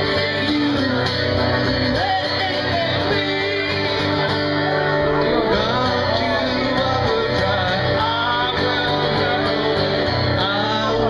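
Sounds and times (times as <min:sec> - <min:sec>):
acoustic guitar strumming: 0:00.0 - 0:11.0
person singing: 0:00.0 - 0:11.0.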